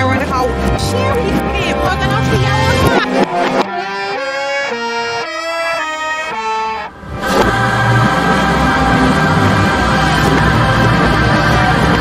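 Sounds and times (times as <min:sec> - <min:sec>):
reversed hip-hop music: 0:00.0 - 0:12.0.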